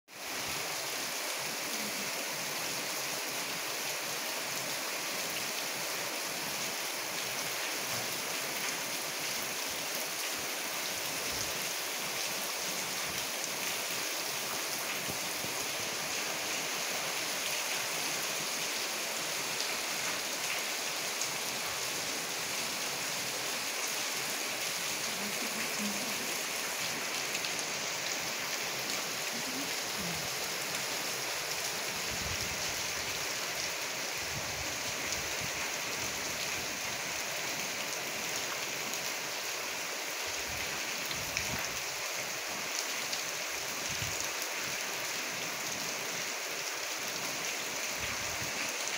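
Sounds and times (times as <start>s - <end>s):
rain on concrete: 0.1s - 48.9s.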